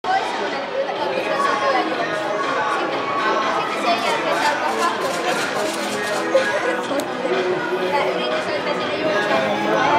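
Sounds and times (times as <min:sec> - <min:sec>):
crowd chattering: 0:00.0 - 0:09.9.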